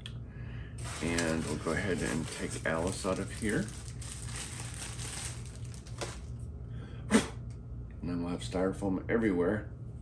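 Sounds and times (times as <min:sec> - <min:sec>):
steady low hum: 0:00.0 - 0:10.0
plastic bag rustling: 0:00.8 - 0:06.4.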